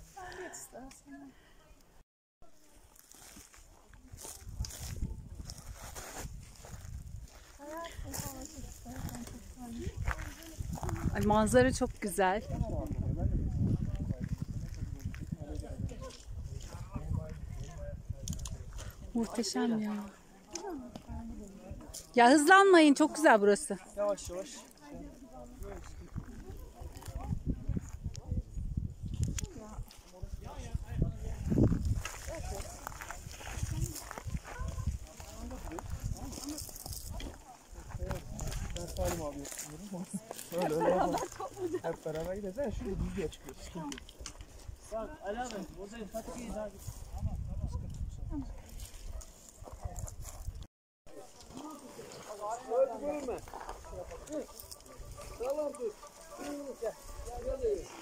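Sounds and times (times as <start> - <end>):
people talking in background: 0.0 - 50.4, 51.1 - 58.0
footsteps on gravel: 31.4 - 42.1
people talking: 38.0 - 43.1.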